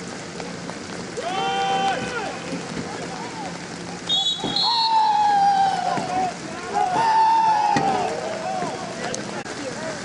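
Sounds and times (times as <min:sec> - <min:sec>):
referee whistle blast: 0:04.1 - 0:05.4
long high drawn-out call: 0:04.1 - 0:06.0.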